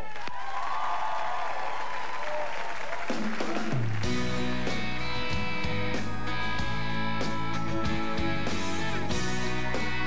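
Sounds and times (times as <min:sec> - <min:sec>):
people cheering: 0:00.0 - 0:04.2
audience applauding: 0:00.0 - 0:04.4.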